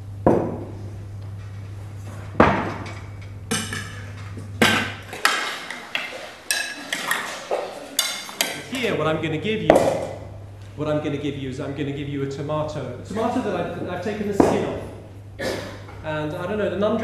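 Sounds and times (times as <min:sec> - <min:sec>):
low steady hum: 0:00.0 - 0:17.0
clinks and rattles of cutlery: 0:05.2 - 0:08.7.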